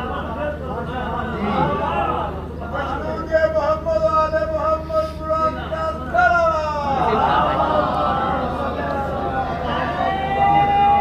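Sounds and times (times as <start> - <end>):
low hum from sound system: 0.0 - 11.0.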